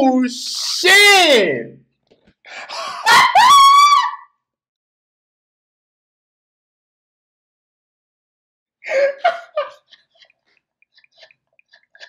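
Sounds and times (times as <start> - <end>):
man shrieking: 3.0 - 4.3.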